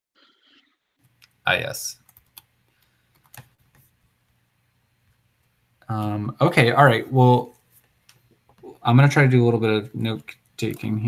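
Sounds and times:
faint keyboard keystrokes: 0:02.0 - 0:03.9.

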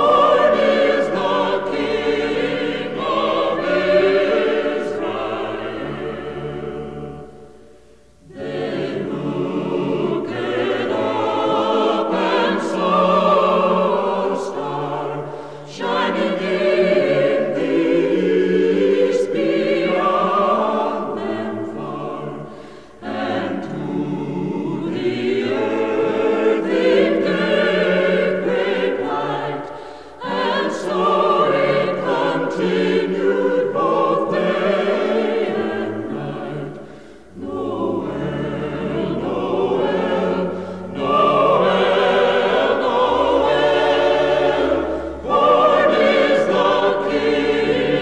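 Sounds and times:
choir singing a carol: 0:00.0 - 0:48.0.

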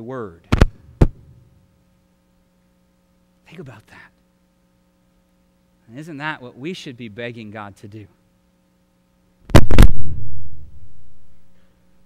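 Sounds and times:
faint electrical hum: 0:00.0 - 0:12.0
loud noise burst at microphone: 0:09.5 - 0:11.6.

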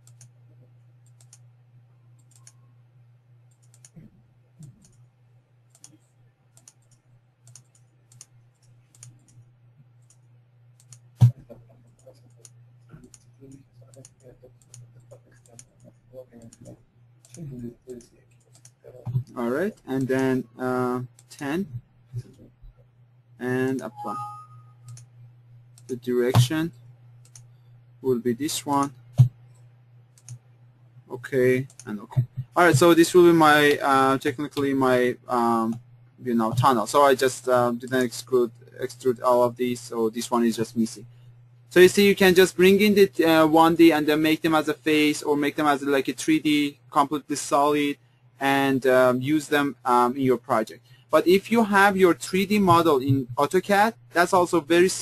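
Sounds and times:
computer mouse clicks: 0:00.0 - 0:00.4, 0:01.0 - 0:01.5, 0:02.2 - 0:02.7, 0:03.5 - 0:05.1, 0:05.7 - 0:17.4, 0:18.0 - 0:20.1, 0:24.8 - 0:27.6, 0:28.7 - 0:30.5, 0:31.6 - 0:32.8
low electrical hum: 0:00.0 - 0:55.0.

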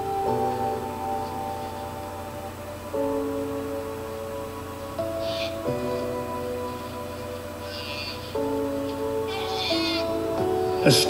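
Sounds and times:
soft music with held notes: 0:00.0 - 0:11.0.

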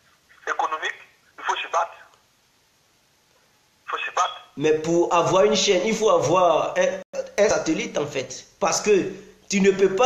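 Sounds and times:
person speaking over telephone: 0:00.4 - 0:02.2, 0:03.9 - 0:04.6.

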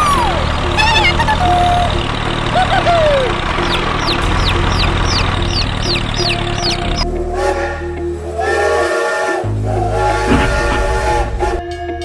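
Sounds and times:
low engine hum: 0:00.0 - 0:08.4, 0:09.5 - 0:11.6
background music: 0:00.0 - 0:12.0
sliding pitched notes: 0:00.0 - 0:12.0.

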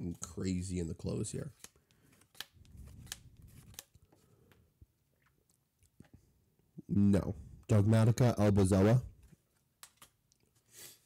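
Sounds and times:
cards being flipped through: 0:01.4 - 0:04.6, 0:09.2 - 0:10.2.

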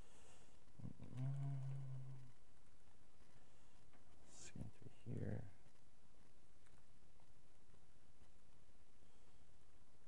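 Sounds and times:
man humming: 0:00.8 - 0:02.3.

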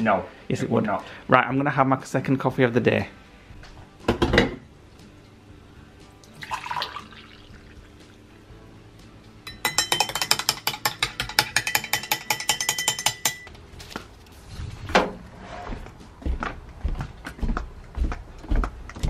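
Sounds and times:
coffee pouring into a mug: 0:06.3 - 0:08.1
teaspoon clinking in a mug: 0:09.5 - 0:13.5.

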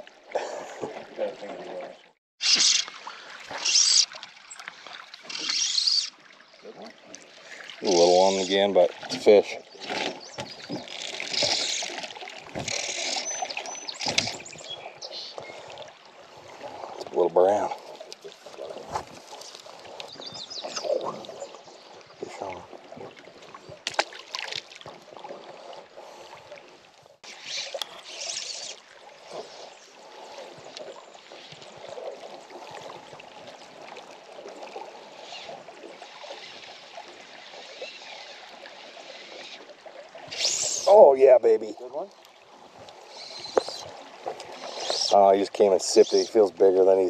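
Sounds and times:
water lapping against boat hull: 0:00.0 - 0:47.0.

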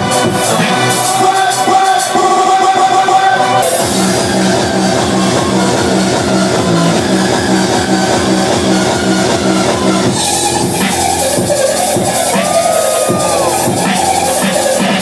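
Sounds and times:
loud dance music: 0:00.0 - 0:15.0.

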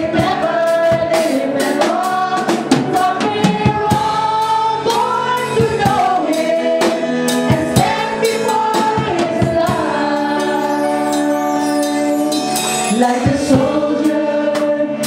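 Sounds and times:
voices singing along: 0:00.0 - 0:15.0
woman singing into a microphone: 0:00.0 - 0:15.0.

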